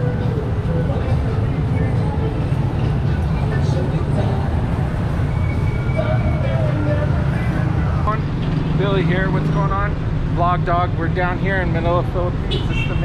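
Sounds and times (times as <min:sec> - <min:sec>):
traffic rumble: 0:00.0 - 0:13.0
people talking: 0:05.9 - 0:13.0.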